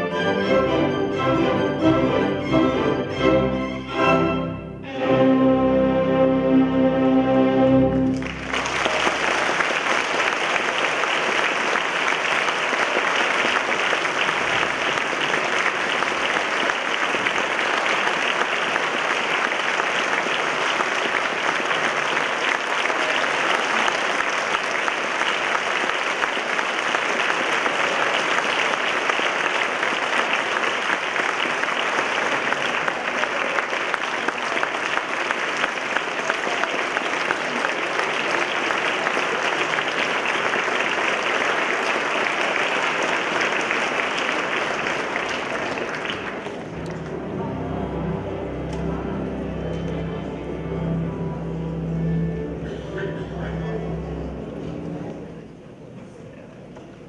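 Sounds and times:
audience applauding: 8.0 - 55.5.

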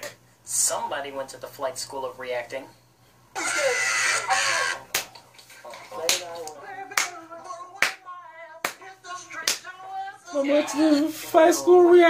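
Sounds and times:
man laughing: 3.4 - 4.8
hands clapping: 4.9 - 7.2, 7.8 - 8.0, 8.6 - 9.7.

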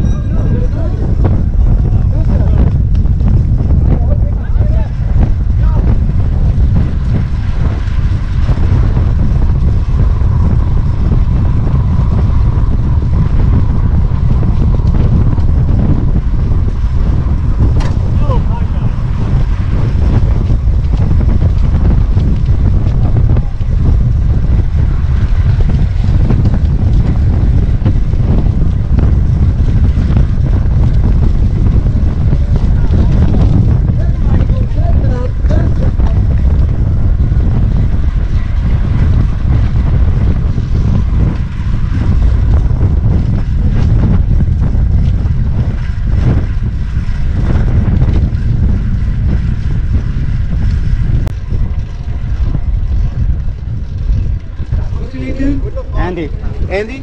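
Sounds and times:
wind buffeting microphone: 0.0 - 57.0.

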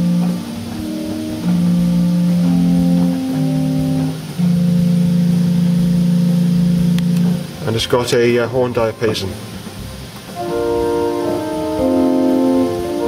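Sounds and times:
pipe organ flute stop notes: 0.0 - 7.5, 10.3 - 13.0.

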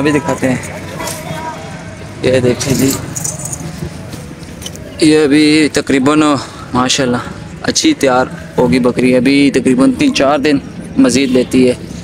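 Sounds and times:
outdoor background hiss: 0.0 - 12.0
light jingling: 2.4 - 3.9.

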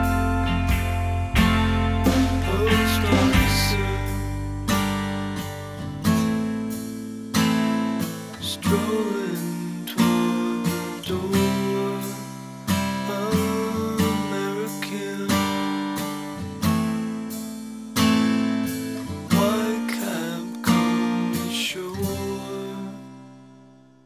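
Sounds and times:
acoustic guitar strumming chords: 0.0 - 24.0.

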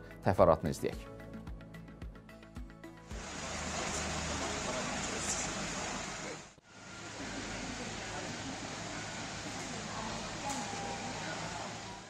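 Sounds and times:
outdoor background noise: 3.1 - 12.0.

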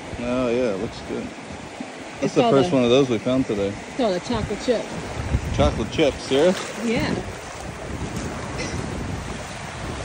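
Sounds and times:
surf washing over sand: 0.0 - 10.0
wind buffeting microphone: 0.0 - 10.0.

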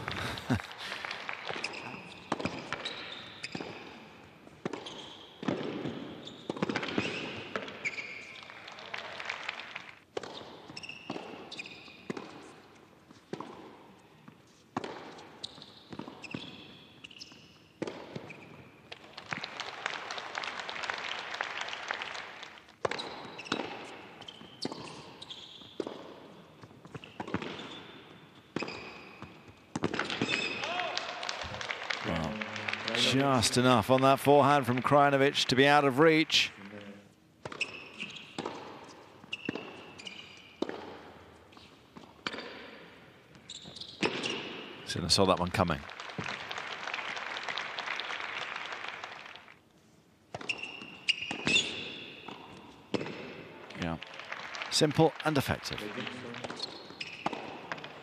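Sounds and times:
shoe squeaks on court: 1.5 - 8.5, 10.2 - 12.6, 14.5 - 18.8, 22.9 - 30.6, 37.4 - 44.7, 50.3 - 53.1, 56.2 - 57.9
tennis ball struck by rackets: 2.3 - 3.8, 4.6 - 7.8, 10.1 - 12.5, 14.7 - 16.7, 17.8 - 18.4, 25.8 - 27.7, 28.6 - 30.5, 38.4 - 41.3, 50.3 - 53.4.

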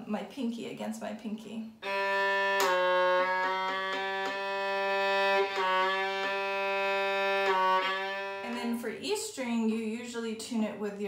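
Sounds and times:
violin string bowed: 1.8 - 8.8.

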